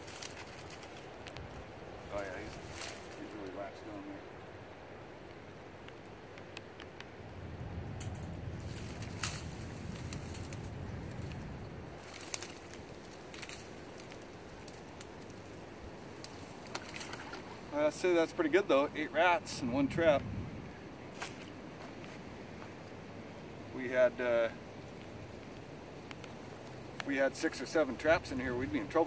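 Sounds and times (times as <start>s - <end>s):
low rumble: 7.2s - 12.1s.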